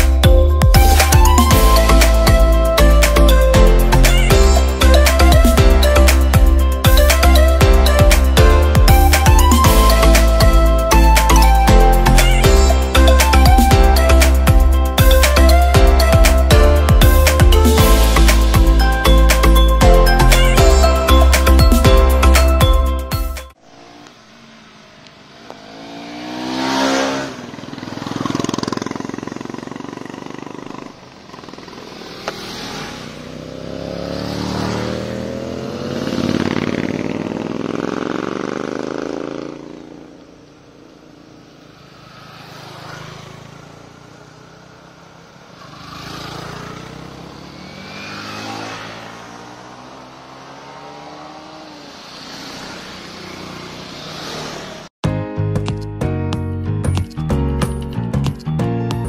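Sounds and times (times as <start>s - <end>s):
motorcycles riding past: 23.6s - 54.9s.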